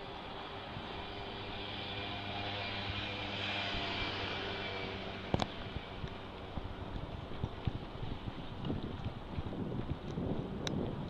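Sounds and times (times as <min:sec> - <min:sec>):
distant engine drone with hiss: 0:00.0 - 0:08.5.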